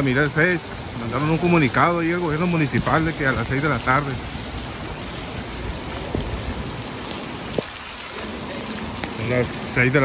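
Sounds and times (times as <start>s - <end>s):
rain on a wet street: 0.0s - 10.0s.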